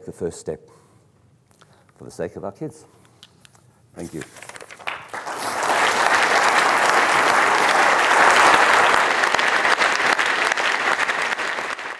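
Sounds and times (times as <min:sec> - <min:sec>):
audience applauding: 0:04.4 - 0:11.9.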